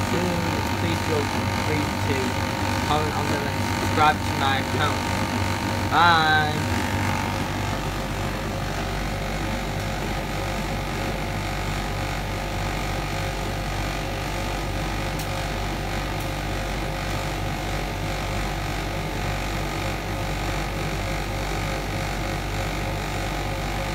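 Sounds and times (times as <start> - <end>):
tumble dryer humming: 0.0 - 19.2.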